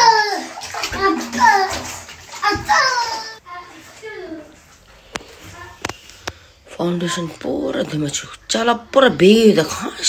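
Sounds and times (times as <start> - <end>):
child talking: 0.0 - 4.6, 5.4 - 5.9.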